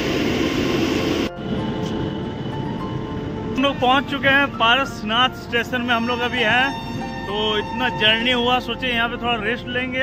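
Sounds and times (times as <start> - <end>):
train rumble: 0.0 - 9.9.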